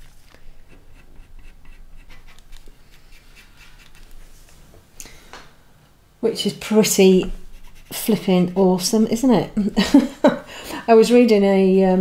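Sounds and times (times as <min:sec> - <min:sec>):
pencil scratching on paper: 0:00.5 - 0:04.4, 0:07.2 - 0:08.9.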